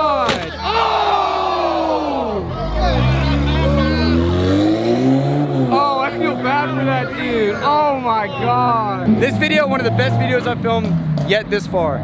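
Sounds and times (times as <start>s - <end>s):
crowd shouting: 0.0s - 4.6s, 5.7s - 9.0s
sports car engine revving: 2.6s - 7.5s, 9.0s - 12.0s.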